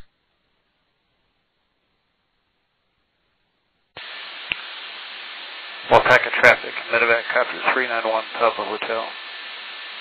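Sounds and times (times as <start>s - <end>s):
radio click: 4.0s - 4.9s
radio static hiss: 4.0s - 10.0s.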